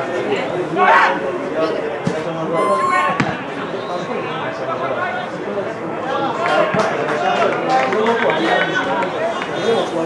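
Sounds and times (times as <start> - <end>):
voices calling and talking: 0.0 - 10.0.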